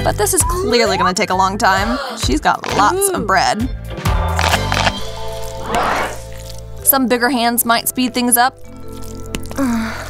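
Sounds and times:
background music: 0:00.0 - 0:10.0
hand squelching into chocolate spread: 0:04.4 - 0:06.8.

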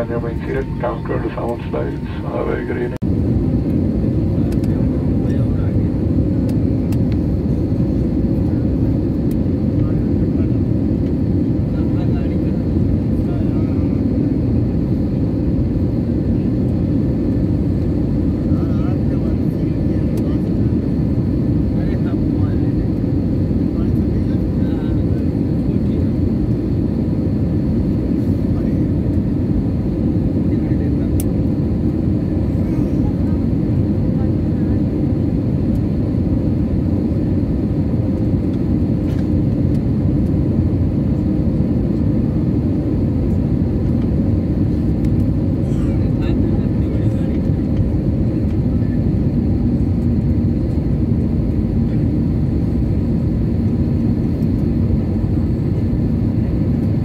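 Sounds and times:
airliner cabin engine rumble: 0:00.0 - 0:57.0.

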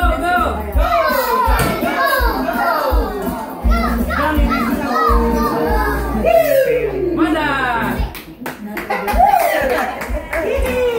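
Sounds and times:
karaoke backing music: 0:00.0 - 0:10.9
children chattering excitedly: 0:00.1 - 0:08.4.

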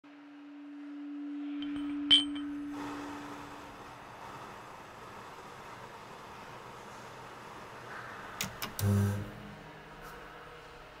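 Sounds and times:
faint steady hiss: 0:00.2 - 0:11.0
sharp ringing clink: 0:01.6 - 0:02.8.

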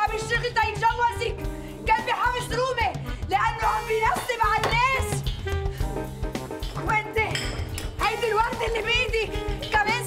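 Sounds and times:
background music with bass line: 0:00.0 - 0:10.0
glasses and dishes clinking: 0:07.3 - 0:08.0.

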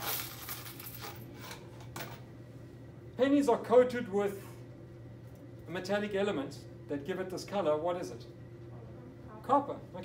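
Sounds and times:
coins jingling and clinking: 0:00.0 - 0:01.6.

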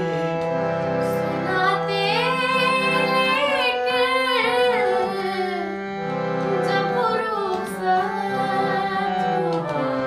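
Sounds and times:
held accompanying notes: 0:00.0 - 0:10.0.

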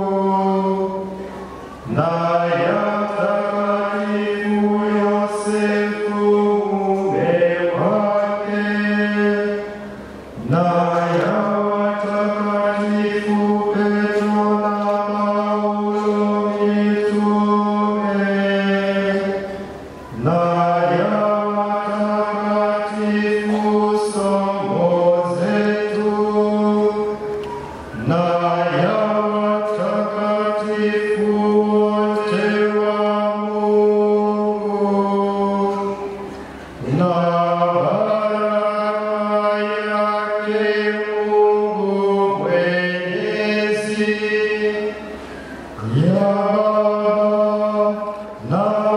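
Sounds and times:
man chanting a prayer: 0:00.0 - 0:48.9.

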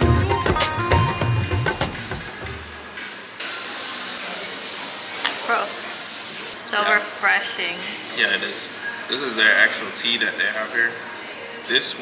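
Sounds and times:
steady hiss: 0:02.6 - 0:12.0.

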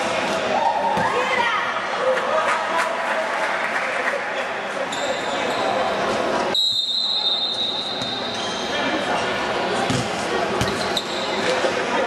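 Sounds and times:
spectators chattering: 0:00.0 - 0:12.0
ball thuds on hard court: 0:09.9 - 0:10.8.

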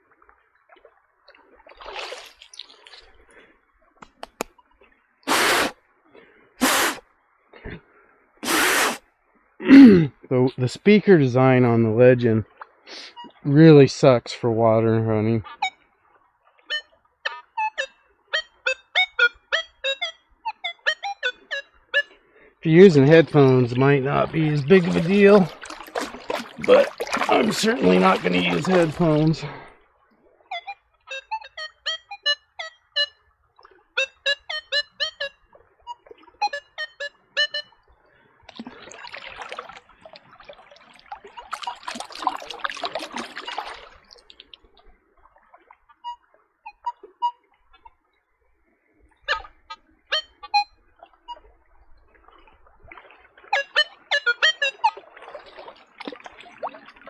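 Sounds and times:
water splashing and sloshing: 0:00.0 - 0:09.6, 0:10.6 - 0:18.6, 0:21.7 - 0:31.5, 0:33.1 - 0:34.0, 0:35.2 - 0:57.0
metal detector beeping: 0:16.7 - 0:22.1, 0:30.5 - 0:33.2, 0:34.0 - 0:35.3, 0:35.9 - 0:37.7, 0:46.0 - 0:47.4, 0:50.1 - 0:50.7, 0:53.6 - 0:55.0.

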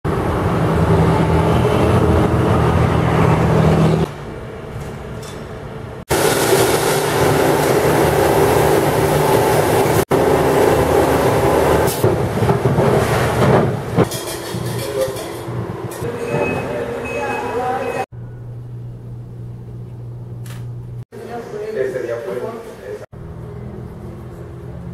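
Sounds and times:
packaging machinery running: 0:06.1 - 0:13.9
people's voices: 0:16.0 - 0:18.1.

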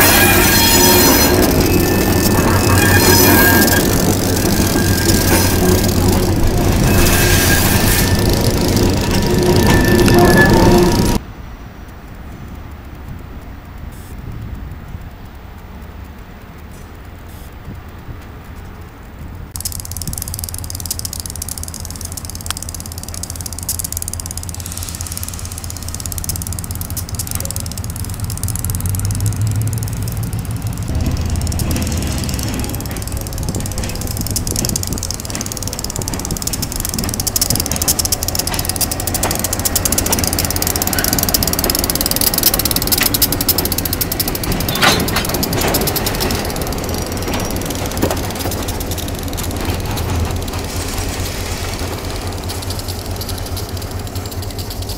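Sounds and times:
train wheels clanking over rail joints: 0:00.0 - 0:11.2, 0:19.6 - 0:54.9
diesel locomotive engine: 0:00.0 - 0:54.9.

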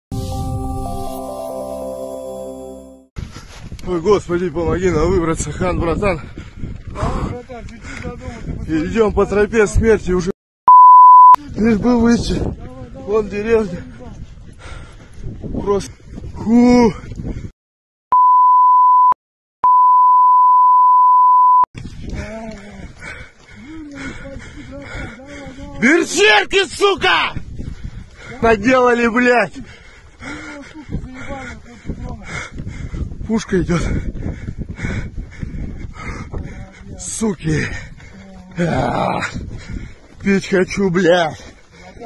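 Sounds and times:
censor bleep tone: 0:10.7 - 0:11.4, 0:18.1 - 0:21.7.

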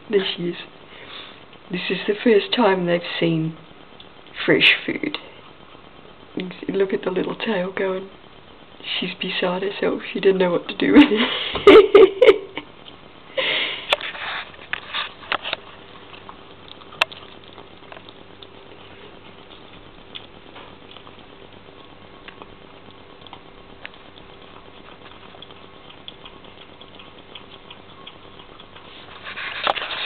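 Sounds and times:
kittens chewing wetly: 0:12.6 - 0:30.0.

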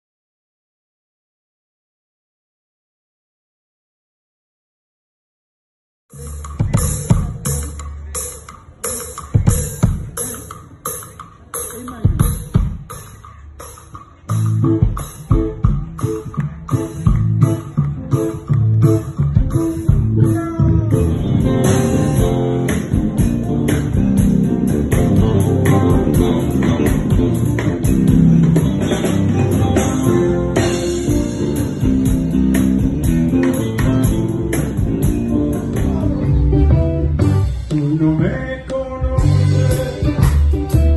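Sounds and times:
bass guitar notes: 0:06.1 - 0:10.3, 0:12.2 - 0:40.9
barrel drum steady beat: 0:06.1 - 0:38.4
live band music: 0:06.2 - 0:40.9.

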